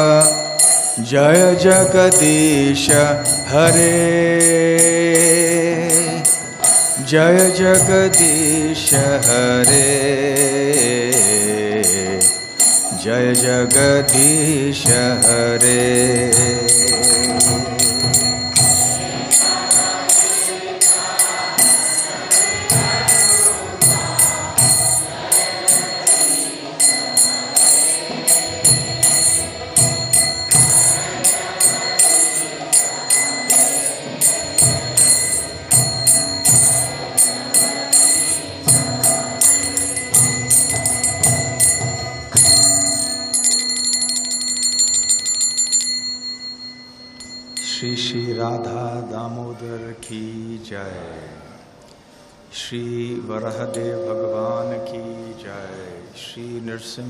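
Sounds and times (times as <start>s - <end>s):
man's voice: 0.0s - 19.3s, 47.6s - 51.6s, 52.5s - 57.0s
hand cymbals struck: 0.0s - 49.6s
devotional instrumental music: 0.0s - 50.3s
drum: 1.3s - 45.8s.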